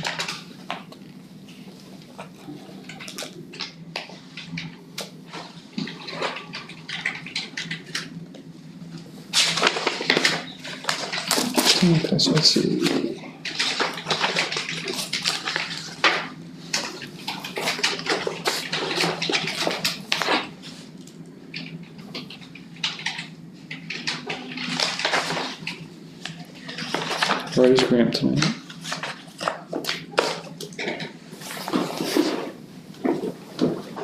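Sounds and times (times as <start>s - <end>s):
paper rustling: 9.0s - 34.0s
low voice: 27.5s - 28.6s.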